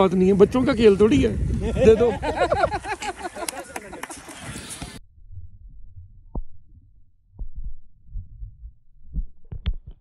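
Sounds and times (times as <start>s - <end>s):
muffled underwater rumbling: 5.0s - 10.0s.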